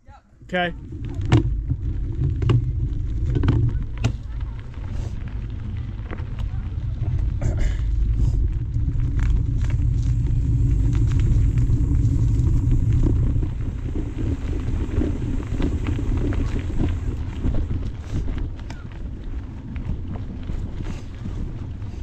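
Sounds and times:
tyre rumble on dirt: 0.4 - 22.0
wind on microphone: 0.4 - 22.0
bike clicks and rattles: 0.8 - 22.0.

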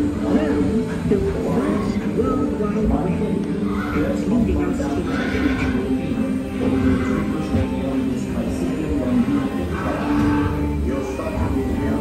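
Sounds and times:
indistinct voices: 0.0 - 12.0
recorded horse whinnying: 3.6 - 5.9.

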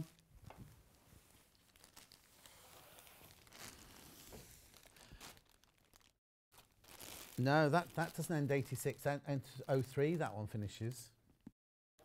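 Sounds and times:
plastic bags crinkling: 1.3 - 2.4, 3.0 - 4.0, 4.6 - 10.2.

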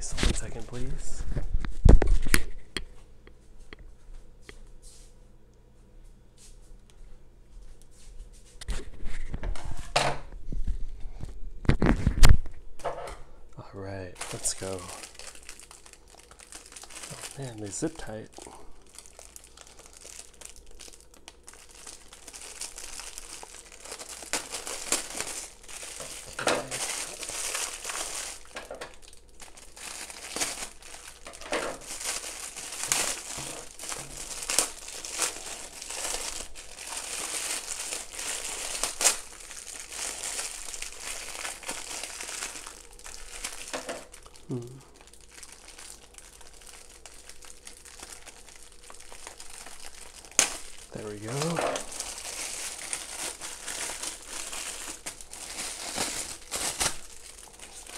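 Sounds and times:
loud sharp plastic crackle: 11.6 - 12.9, 14.2 - 57.9
plastic packaging crinkling: 14.2 - 57.9.

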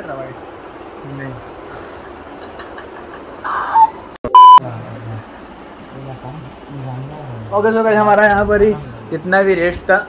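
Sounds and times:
electronic beep tone: 4.3 - 4.6.

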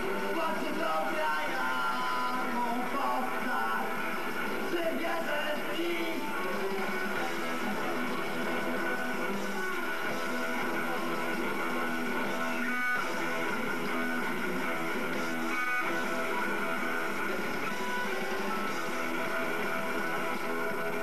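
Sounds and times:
punk band playing live: 0.0 - 21.0.

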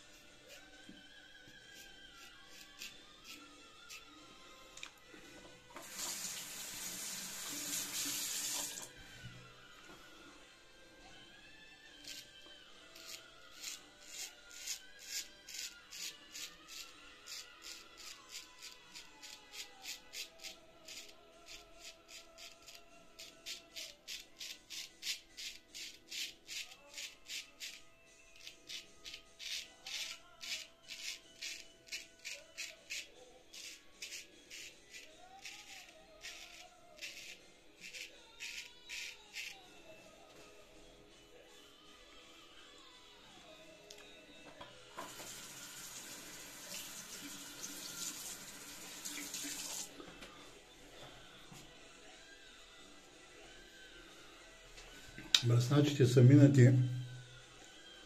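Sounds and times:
soft background music: 0.0 - 58.0
razor scraping stubble: 1.7 - 4.2, 12.9 - 39.7
tap water running: 5.8 - 8.9, 45.0 - 49.9.

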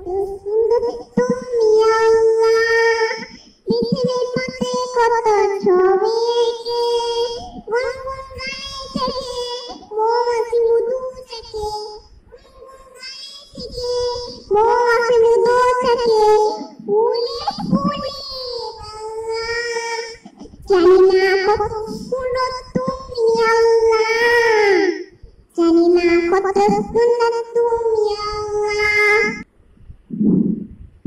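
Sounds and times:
girl singing devotional song: 0.0 - 29.5.

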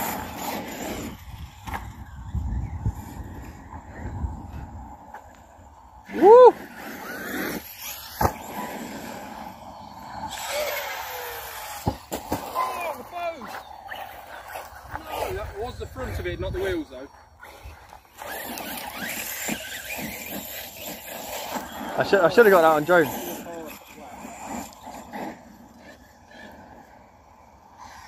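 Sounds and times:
wind rumble on microphone: 0.0 - 6.2, 14.0 - 18.1
distant voices calling out: 3.0 - 28.0.

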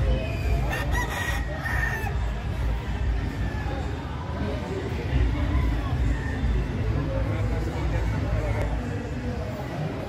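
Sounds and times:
rooster crowing: 0.7 - 2.1.

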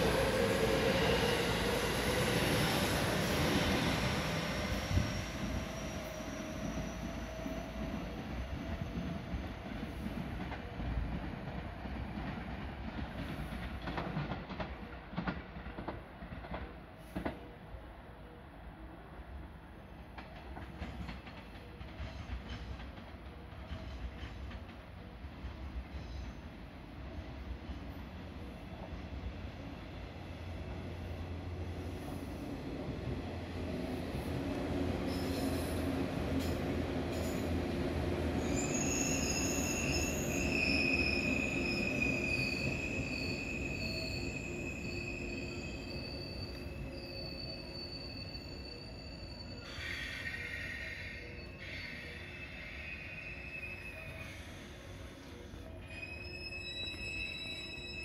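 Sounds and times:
high steady brake squeal: 0.0 - 9.2, 35.0 - 37.6, 38.4 - 58.0
electric train rumbling past: 0.0 - 58.0.

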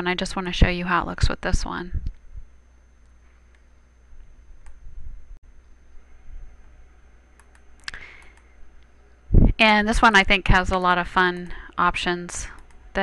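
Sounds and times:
low steady hum: 0.0 - 13.0
computer mouse clicks: 7.4 - 8.5, 12.4 - 12.8.

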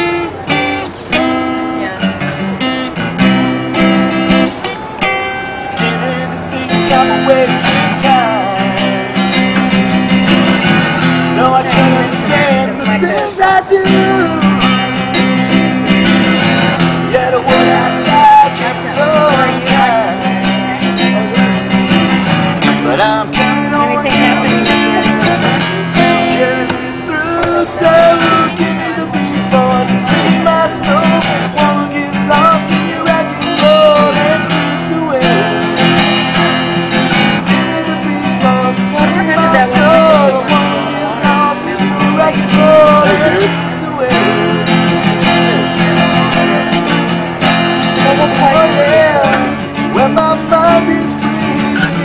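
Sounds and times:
amplified acoustic guitar chords: 0.0 - 52.0
person singing: 11.2 - 14.6, 22.7 - 35.9, 37.4 - 46.7, 47.9 - 52.0.

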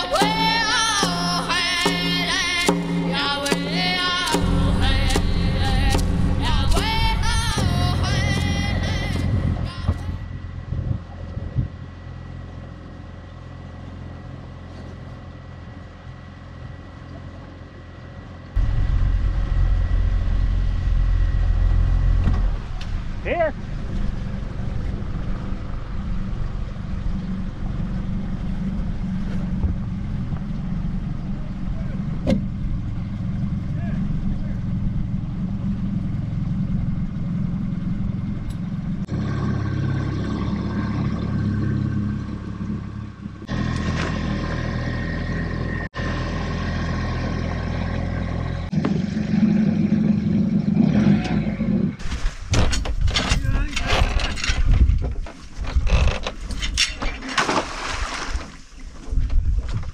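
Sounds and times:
outboard motor hum: 0.0 - 59.9
wind gusts on microphone: 51.8 - 56.8, 57.9 - 59.9.

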